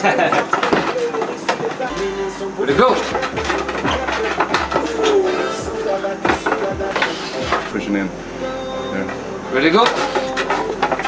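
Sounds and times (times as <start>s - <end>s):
music playing: 0.0s - 11.0s.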